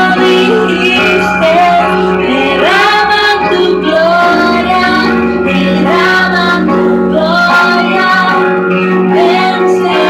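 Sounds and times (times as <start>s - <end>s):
musical accompaniment with low held note: 0.0s - 9.1s
woman singing into microphone: 0.0s - 10.0s.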